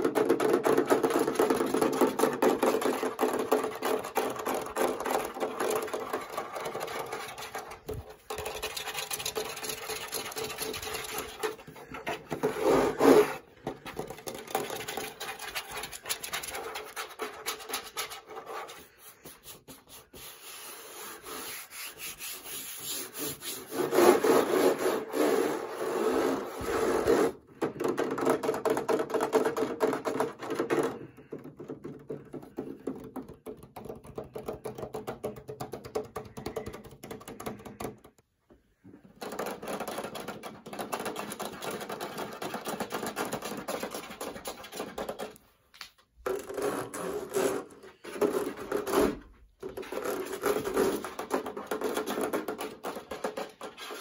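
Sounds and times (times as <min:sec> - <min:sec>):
scratching and tapping on fan casing: 0:00.0 - 0:19.3, 0:27.6 - 0:38.2, 0:39.0 - 0:47.4, 0:48.0 - 0:54.0.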